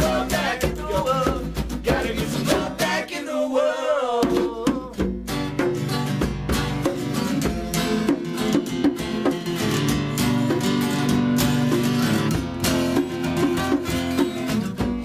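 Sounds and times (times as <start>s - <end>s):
acoustic guitar strummed: 0.0s - 3.2s, 4.2s - 15.0s
second acoustic guitar: 0.0s - 3.3s, 4.2s - 15.0s.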